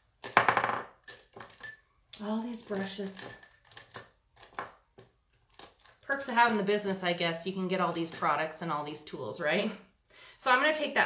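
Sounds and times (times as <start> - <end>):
makeup tools clattering: 0.0 - 7.1, 7.8 - 8.7.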